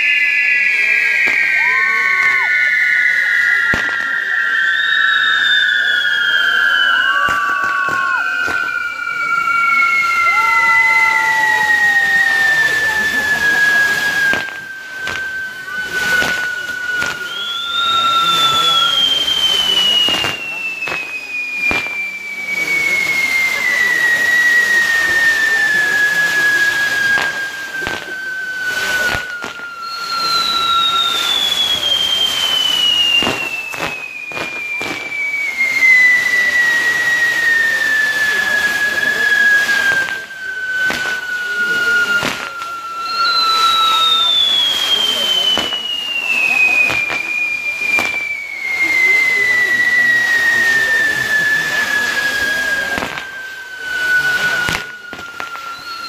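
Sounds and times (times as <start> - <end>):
fireworks whistles gliding down: 0.0 - 56.0
crackling pops: 14.1 - 17.8, 18.4 - 22.1, 26.9 - 28.2, 31.3 - 35.2, 40.8 - 41.4, 42.1 - 42.7, 47.9 - 48.3.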